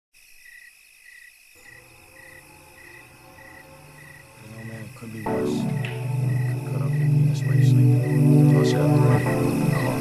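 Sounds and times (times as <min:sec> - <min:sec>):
crickets chirping: 0:00.2 - 0:10.0.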